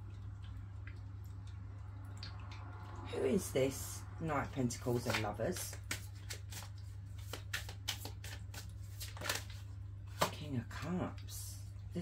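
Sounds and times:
cards being shuffled: 4.9s - 10.3s.

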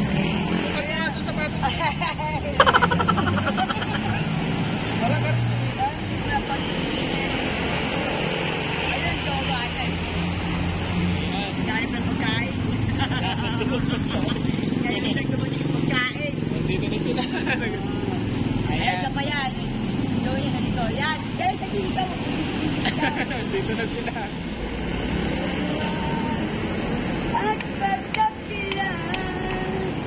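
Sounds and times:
car and motorcycle engines humming: 0.0s - 5.8s
road traffic: 0.0s - 30.0s
people's voices: 2.6s - 4.3s.

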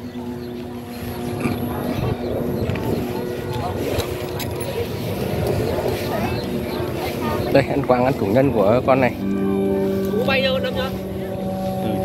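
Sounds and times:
kite flutes droning: 0.0s - 12.0s.

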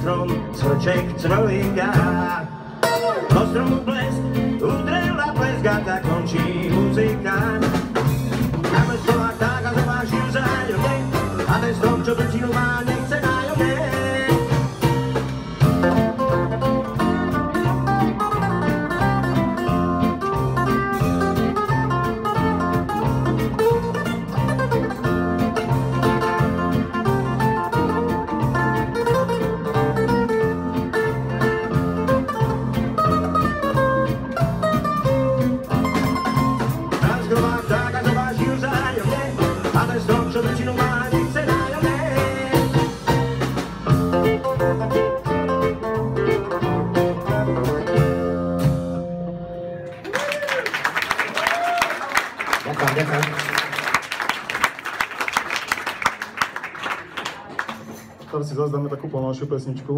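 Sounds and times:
small band playing swing music: 0.0s - 58.2s.

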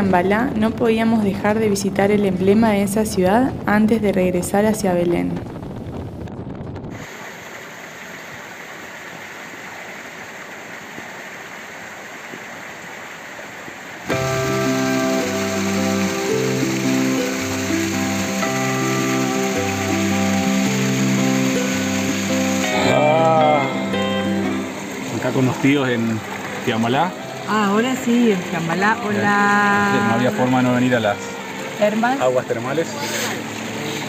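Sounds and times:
water running over stone: 7.0s - 34.0s
background music with bass line: 14.1s - 28.0s.

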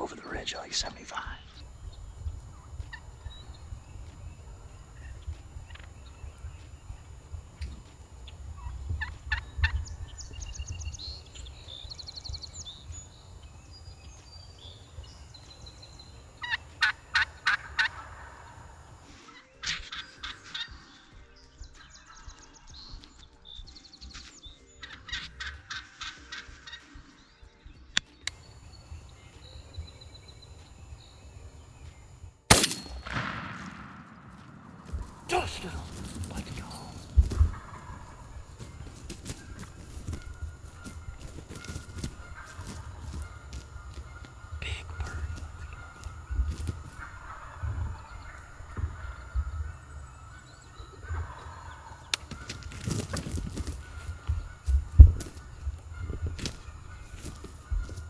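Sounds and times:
turkeys gobbling: 1.7s - 11.5s, 14.6s - 20.7s, 24.8s - 26.8s, 33.0s - 58.0s
gunshot: 32.5s - 35.2s.

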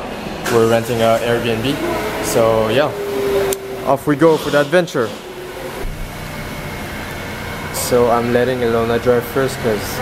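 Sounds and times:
ventilation fan running: 0.0s - 10.0s
car engine idling: 0.4s - 10.0s
dull low thump: 5.1s - 6.3s.

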